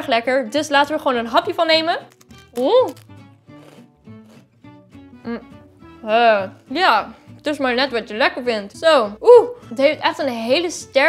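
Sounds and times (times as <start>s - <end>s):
soft plucked background music: 0.0s - 11.0s
cracker crunching while chewed: 2.0s - 4.5s.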